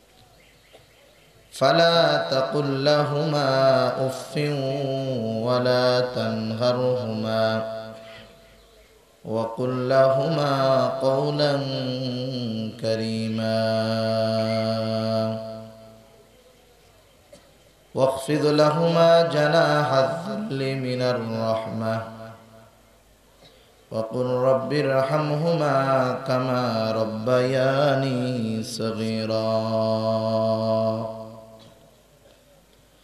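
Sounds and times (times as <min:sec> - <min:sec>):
man reciting melodically: 0:01.2 - 0:16.3, 0:17.9 - 0:23.0, 0:23.9 - 0:32.0.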